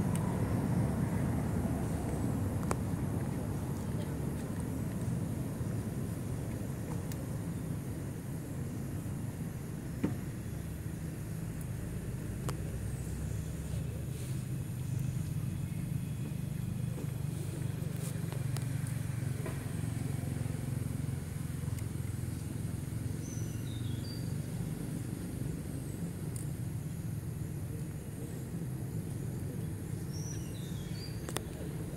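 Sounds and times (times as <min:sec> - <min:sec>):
low outdoor rumble: 0:00.0 - 0:31.9.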